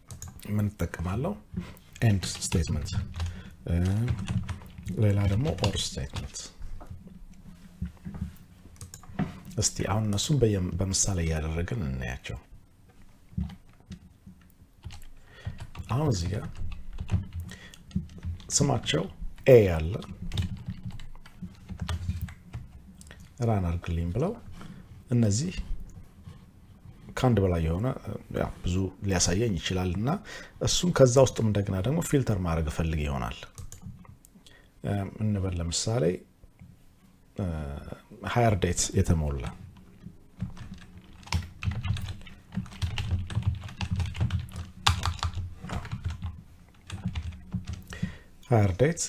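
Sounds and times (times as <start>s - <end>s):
keyboard keys clicking: 0.0s - 0.5s, 2.0s - 6.4s, 8.2s - 9.6s, 20.0s - 23.4s, 40.4s - 48.0s.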